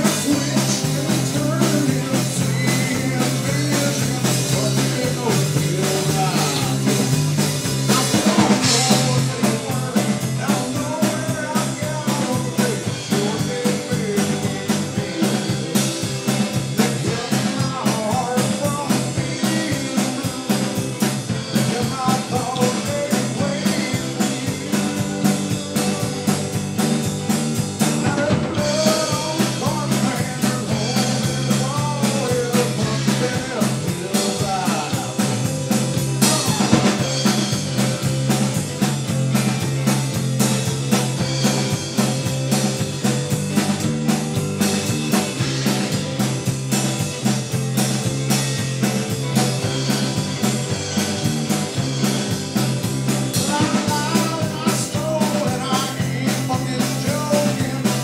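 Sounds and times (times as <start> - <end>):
bass guitar: 0.0 - 58.0
drum kit with cymbals: 0.0 - 58.0
electric guitar: 0.0 - 58.0.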